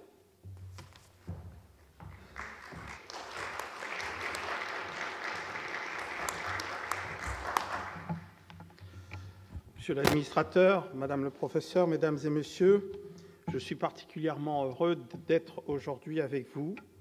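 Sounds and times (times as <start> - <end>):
audience applauding: 2.0 - 8.5.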